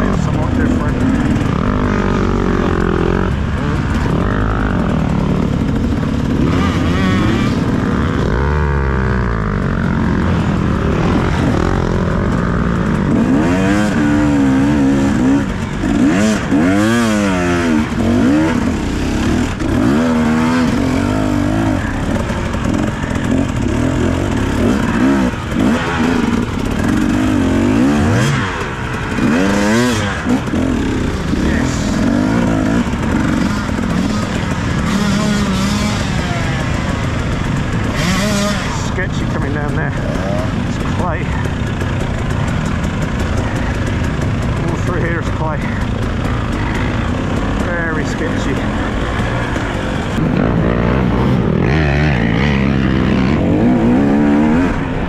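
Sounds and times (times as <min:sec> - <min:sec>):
two-stroke dirt bike engine revving: 0:00.0 - 0:55.0.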